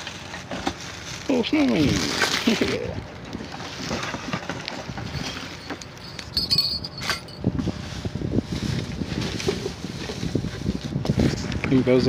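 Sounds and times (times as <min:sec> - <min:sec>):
plastic and foil crinkling: 0:00.0 - 0:03.0.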